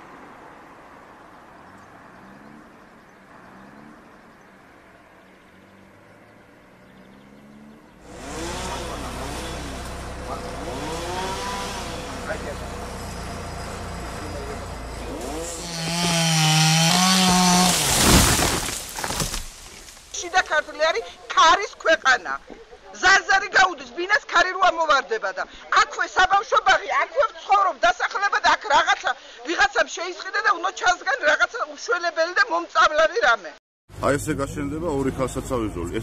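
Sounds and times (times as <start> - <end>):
chainsaw revving: 8.0 - 19.9.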